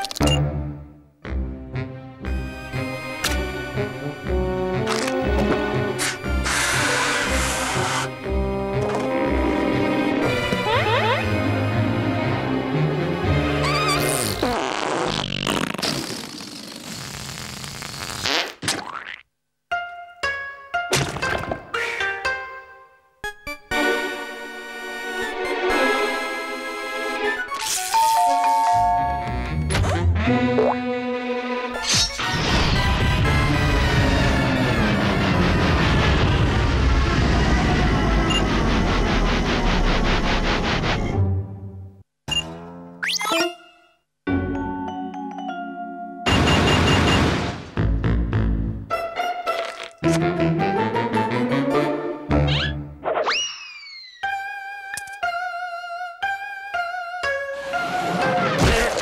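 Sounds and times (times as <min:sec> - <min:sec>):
orchestral score: 0:00.3 - 0:13.7, 0:48.9 - 0:52.5.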